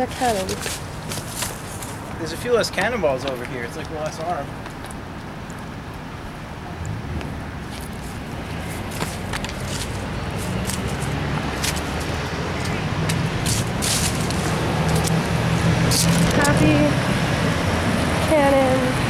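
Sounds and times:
vehicle engine hum: 0.0 - 19.0.

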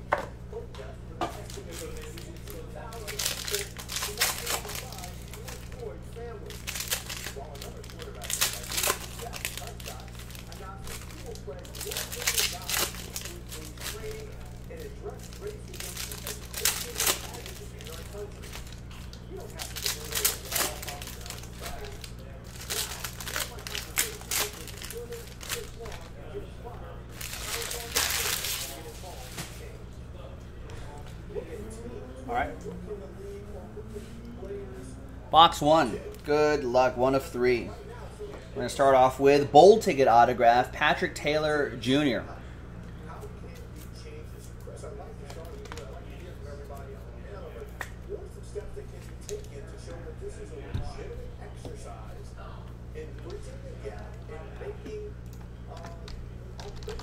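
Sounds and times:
low electrical hum: 0.0 - 57.0
foil wrappers tearing and crinkling: 1.4 - 26.3, 27.1 - 29.7, 45.2 - 47.0, 55.7 - 57.0.

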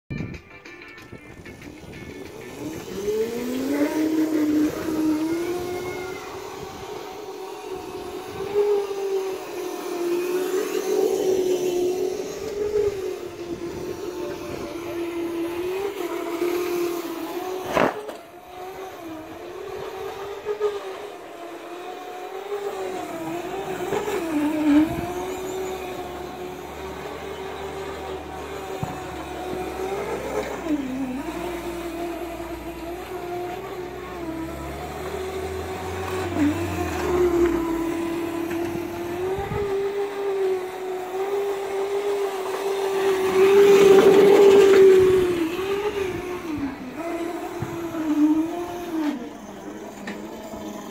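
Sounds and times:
electric motor whining: 1.0 - 50.9.

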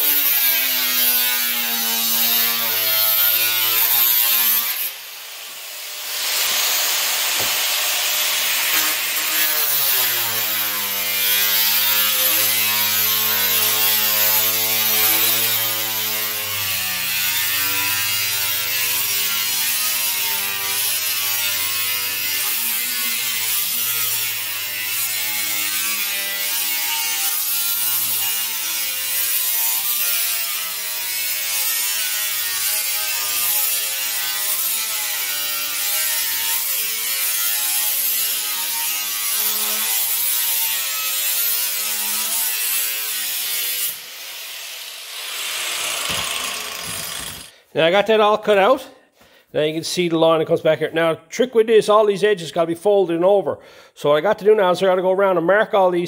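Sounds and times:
angle grinder cutting steel: 0.0 - 47.6.

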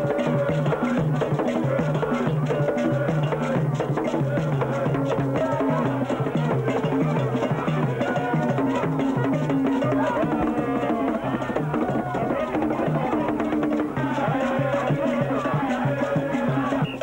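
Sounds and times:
hand drums playing fast rhythm: 0.0 - 17.0
voices singing: 0.0 - 17.0.

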